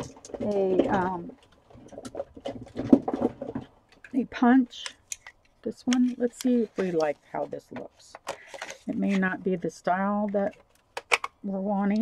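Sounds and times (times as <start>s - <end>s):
hands rummaging craft supplies: 0.0s - 11.2s.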